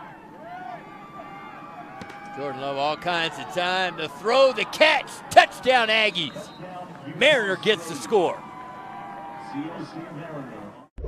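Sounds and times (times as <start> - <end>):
football commentary speech: 2.3 - 8.4, 9.4 - 10.9.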